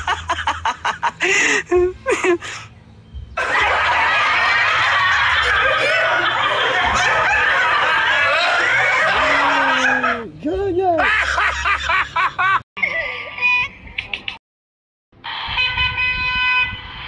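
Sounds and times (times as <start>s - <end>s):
crowd laughing and chattering: 0.0s - 14.4s.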